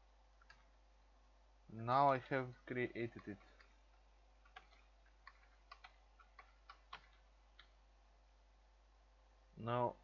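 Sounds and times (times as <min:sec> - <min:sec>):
low hiss: 0:00.0 - 0:10.0
keyboard keystrokes: 0:04.4 - 0:07.8.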